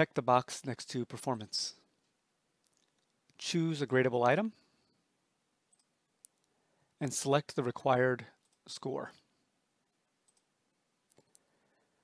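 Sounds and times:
faint computer mouse click: 0:10.2 - 0:10.5.

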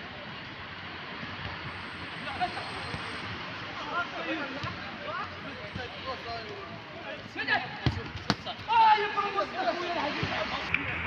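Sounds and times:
players shouting: 0:02.2 - 0:10.7.

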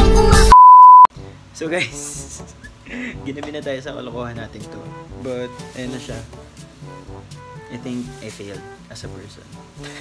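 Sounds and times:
electronic censor bleep: 0:00.5 - 0:01.1
upbeat background music: 0:01.2 - 0:10.0.

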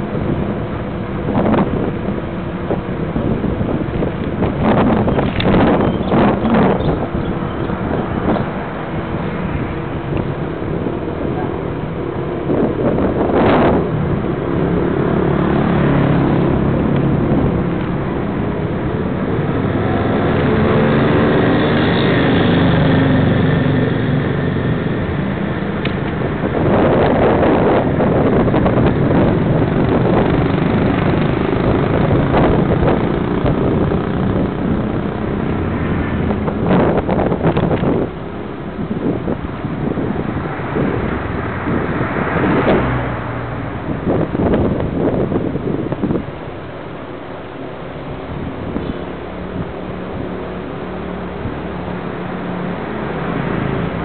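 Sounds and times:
road and wind rumble: 0:00.0 - 0:54.0
vehicle engines passing: 0:00.0 - 0:54.0.

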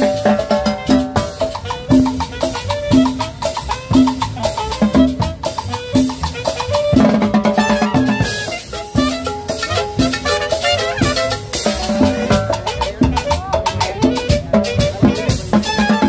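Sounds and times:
drum kit beat: 0:00.0 - 0:16.0
live band playing latin dance music: 0:00.0 - 0:16.0.

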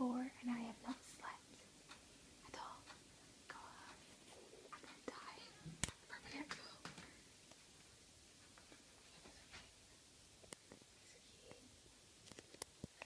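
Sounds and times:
person whispering: 0:00.5 - 0:01.4, 0:02.4 - 0:06.9, 0:11.0 - 0:11.7.

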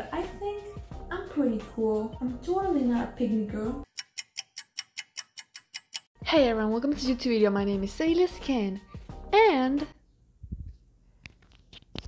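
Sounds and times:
clock ticking: 0:03.8 - 0:06.2.

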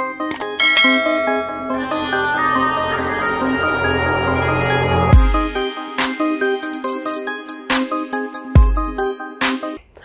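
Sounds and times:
bright electronic jingle: 0:00.6 - 0:05.5.

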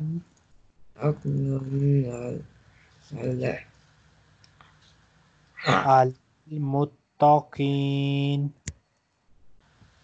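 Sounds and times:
man holding a long vowel: 0:05.6 - 0:08.5.

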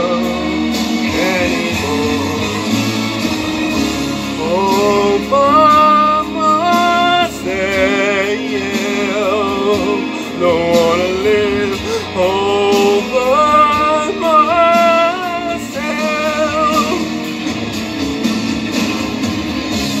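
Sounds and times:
man singing: 0:00.0 - 0:03.3, 0:04.3 - 0:17.2
karaoke backing track: 0:00.0 - 0:20.0.

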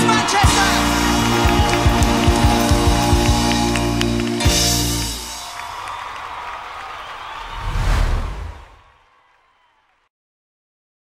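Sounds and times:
concert music: 0:00.0 - 0:05.7
audience applause and cheering: 0:00.0 - 0:10.1
whoosh with deep boom: 0:07.4 - 0:08.8.

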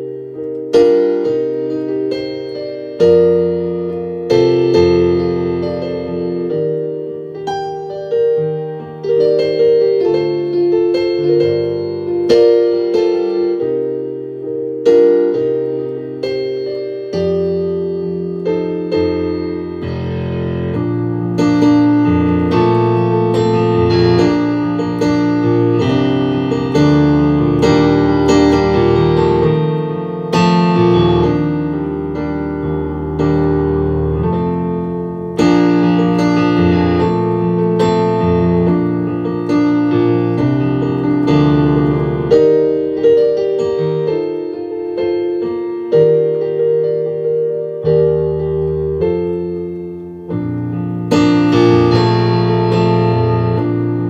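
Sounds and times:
solo piano melody over chords: 0:00.0 - 0:54.0.

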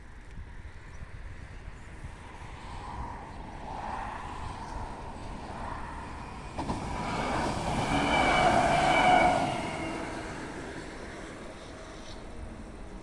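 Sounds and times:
vehicle passing by: 0:02.4 - 0:12.8.

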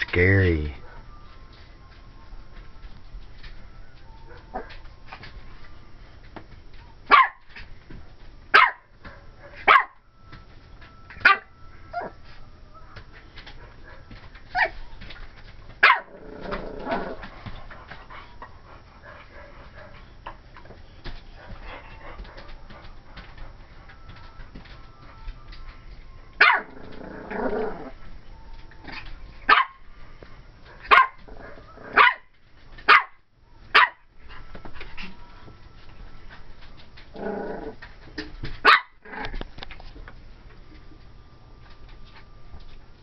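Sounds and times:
puppy yappy barking: 0:07.1 - 0:07.4, 0:08.5 - 0:08.8, 0:09.4 - 0:10.0, 0:11.2 - 0:12.1, 0:15.8 - 0:16.1, 0:26.4 - 0:26.7, 0:29.5 - 0:29.8, 0:30.9 - 0:31.2, 0:32.0 - 0:32.3, 0:32.9 - 0:34.0, 0:38.6 - 0:39.0.

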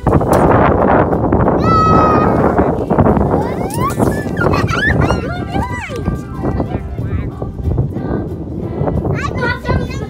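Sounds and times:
child squealing: 0:03.4 - 0:05.8.

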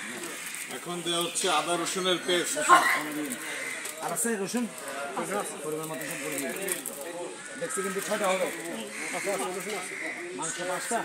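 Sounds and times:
background talk of voices: 0:00.0 - 0:11.0.

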